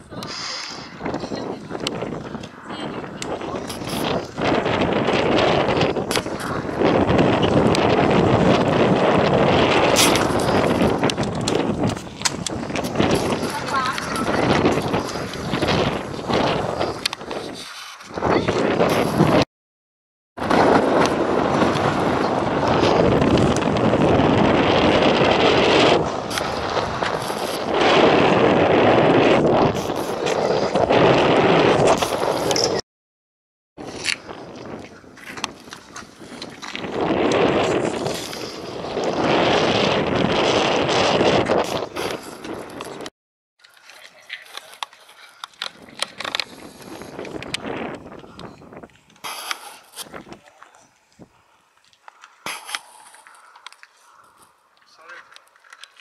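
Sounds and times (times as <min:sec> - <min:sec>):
wind buffeting microphone: 0:00.0 - 0:19.5, 0:20.4 - 0:32.8, 0:33.8 - 0:43.1, 0:44.4 - 0:55.3.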